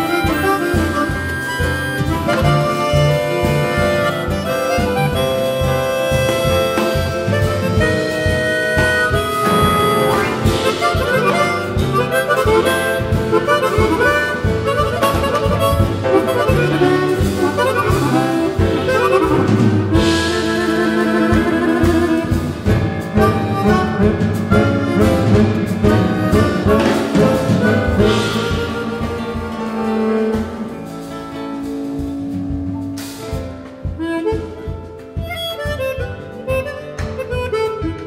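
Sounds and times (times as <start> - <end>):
harmonicas playing a tango melody: 0.0 - 38.0
live band: 0.0 - 38.0.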